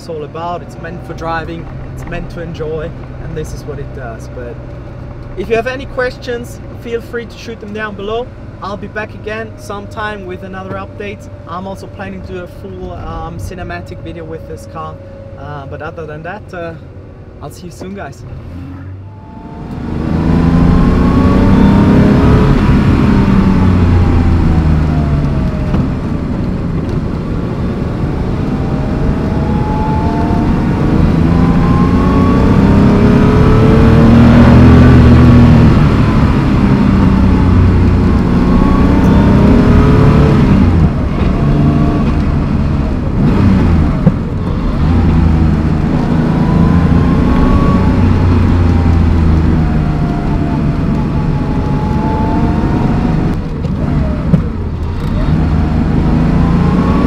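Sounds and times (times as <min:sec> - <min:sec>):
car engine accelerating: 0:00.0 - 0:17.4, 0:18.0 - 0:57.0.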